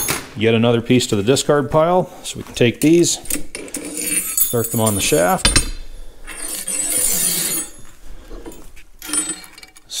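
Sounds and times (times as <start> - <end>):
washer scraping on steel shaft: 6.3 - 7.9.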